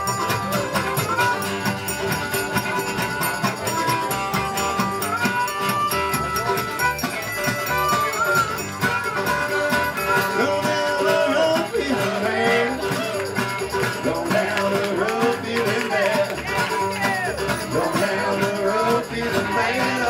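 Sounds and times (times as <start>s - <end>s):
fiddle: 0.0s - 14.7s
harmonica lead notes: 0.0s - 15.7s
acoustic guitar: 0.0s - 20.0s
upright bass: 0.0s - 20.0s.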